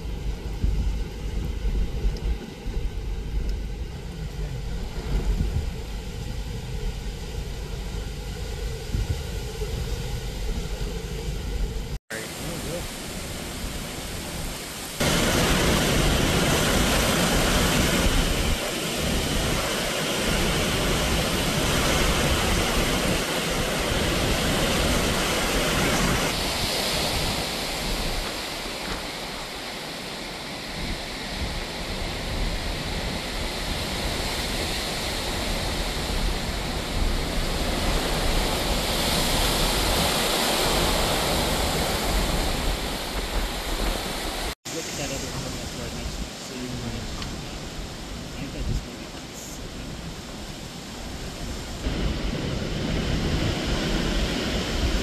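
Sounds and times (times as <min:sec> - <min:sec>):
strong wind buffeting microphone: 0:00.0 - 0:55.0.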